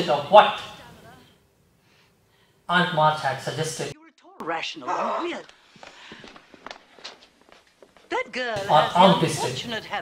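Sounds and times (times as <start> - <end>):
footsteps of people walking: 5.4 - 8.4.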